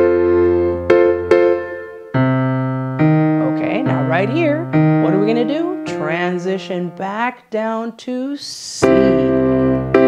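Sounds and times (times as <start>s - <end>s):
piano walking bass: 0.0s - 7.4s, 8.8s - 10.0s
digital piano blues chords: 0.0s - 7.8s, 8.6s - 10.0s.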